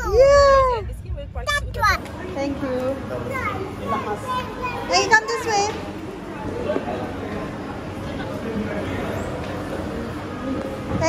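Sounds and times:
children's voices and chatter: 0.0s - 11.0s
child's high voice: 3.3s - 5.5s.

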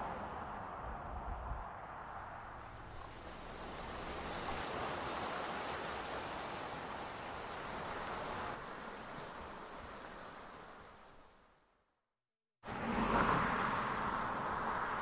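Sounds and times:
fast-flowing creek water rushing: 3.1s - 11.0s.

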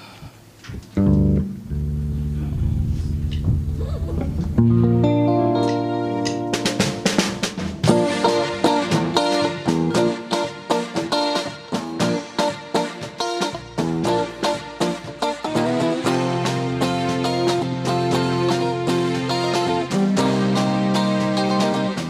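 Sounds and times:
strummed guitar: 1.0s - 22.0s
church band playing: 2.5s - 22.0s
drums beat: 2.6s - 22.0s.

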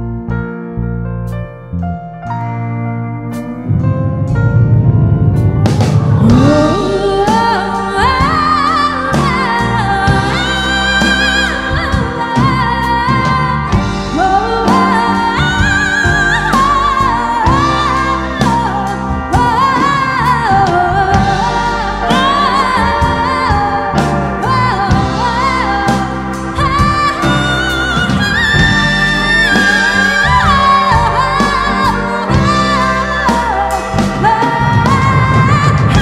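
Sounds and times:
live rock band playing: 0.0s - 36.0s
lap steel guitar: 2.0s - 36.0s
woman singing long notes: 6.2s - 36.0s.

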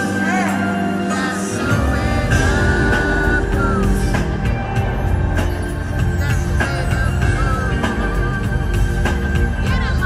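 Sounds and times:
live concert music: 0.0s - 10.0s.

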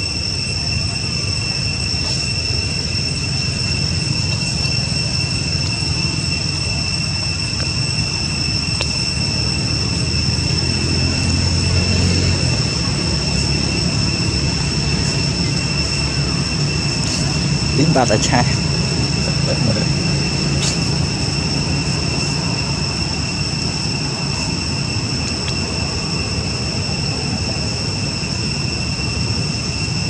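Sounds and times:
insects whining: 0.0s - 30.0s.

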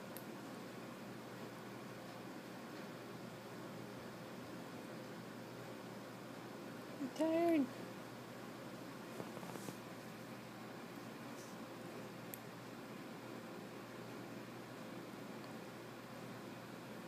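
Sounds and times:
room hiss: 0.0s - 17.0s
soft rustles: 9.0s - 10.0s.

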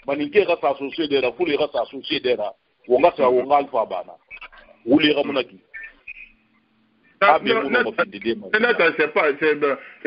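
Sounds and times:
man talking over phone line: 0.0s - 6.1s, 7.1s - 9.7s.

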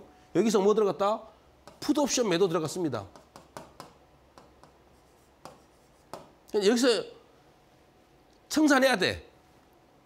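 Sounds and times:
pen tapping on board: 1.6s - 1.9s, 3.1s - 4.8s, 5.4s - 6.4s
pen scratching on board: 4.6s - 6.3s.

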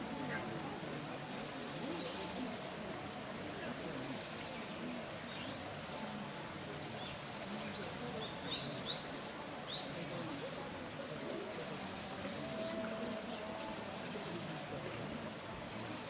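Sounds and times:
stream running over rocks: 0.0s - 16.0s.

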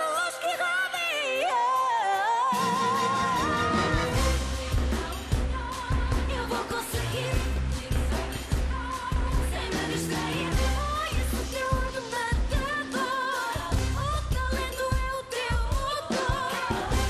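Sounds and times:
upbeat pop song: 0.0s - 17.0s.

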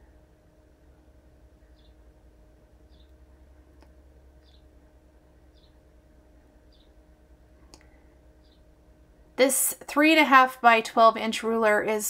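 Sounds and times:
low hum: 0.0s - 11.8s.

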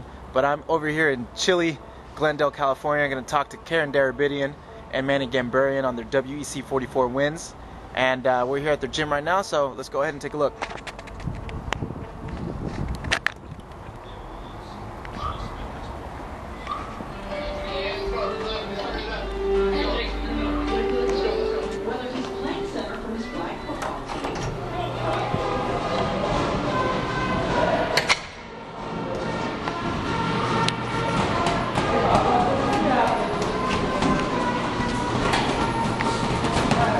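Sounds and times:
distant traffic rumble: 0.0s - 36.9s
music: 0.8s - 7.0s, 17.0s - 36.9s
indistinct background voices: 13.9s - 36.9s
footsteps on pavement: 30.7s - 36.9s.

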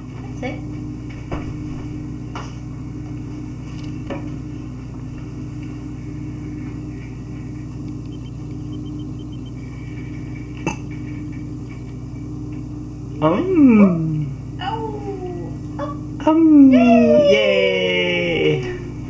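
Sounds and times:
appliance humming: 0.0s - 19.0s.

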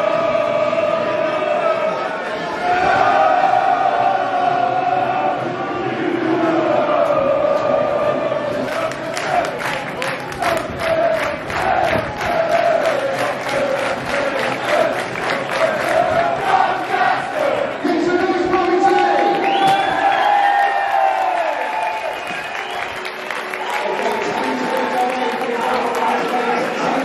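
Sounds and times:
stadium crowd singing a chant: 0.0s - 21.5s
rhythmic hand-clapping: 8.5s - 20.4s, 21.0s - 27.0s.

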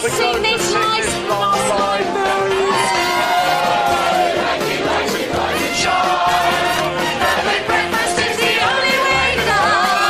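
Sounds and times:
crowd singing: 0.0s - 10.0s.

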